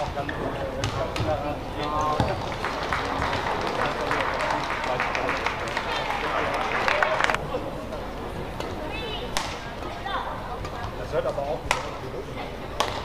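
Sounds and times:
audience clapping: 0:02.2 - 0:07.4.

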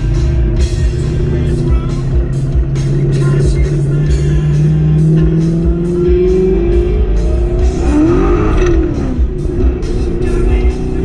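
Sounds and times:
car engine accelerating: 0:00.0 - 0:11.0
loud music: 0:00.0 - 0:11.0.

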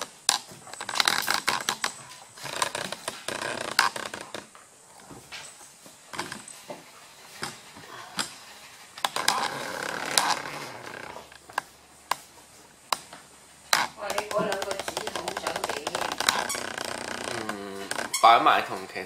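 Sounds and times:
dog claws clicking on wooden floor: 0:12.9 - 0:18.2
dog gnawing a toy: 0:13.7 - 0:18.4
people talking: 0:14.0 - 0:16.1, 0:17.3 - 0:19.0.

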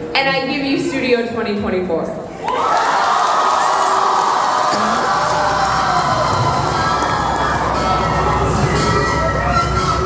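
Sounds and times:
audience cheering and whooping: 0:02.4 - 0:08.8.

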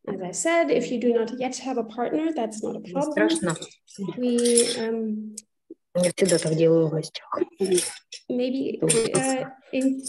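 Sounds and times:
clinking: 0:03.3 - 0:04.8.

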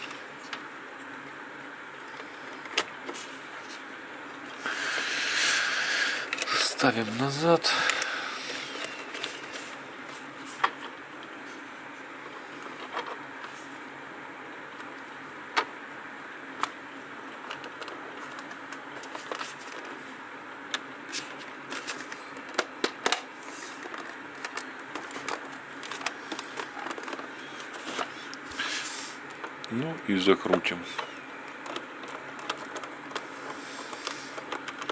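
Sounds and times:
steady background hiss: 0:00.0 - 0:22.4.

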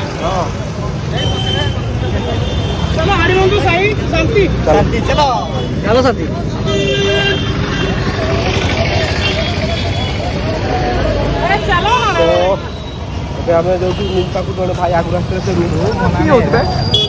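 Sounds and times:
people's voices: 0:00.0 - 0:17.0
street traffic: 0:00.0 - 0:17.0
motor scooter passing: 0:07.6 - 0:11.5.

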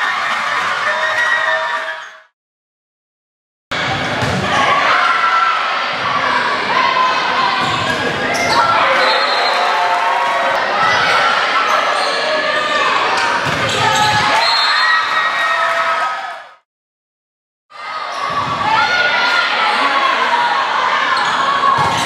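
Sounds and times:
people shouting and calling: 0:03.8 - 0:16.5.

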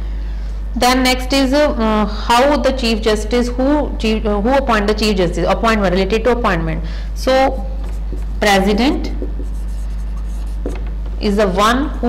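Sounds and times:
steady low hum: 0:00.0 - 0:12.0
marker writing on whiteboard: 0:07.8 - 0:10.9.

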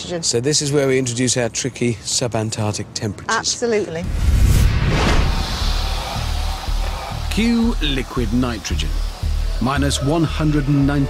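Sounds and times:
music with heavy bass: 0:05.2 - 0:11.0.

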